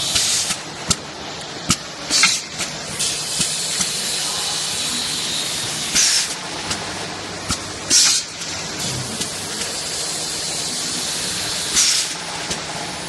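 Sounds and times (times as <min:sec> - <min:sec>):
filling machine hissing: 0:02.1 - 0:06.5, 0:07.9 - 0:12.2
short bursts of air hiss: 0:06.0 - 0:06.4, 0:07.9 - 0:08.3, 0:11.7 - 0:12.2.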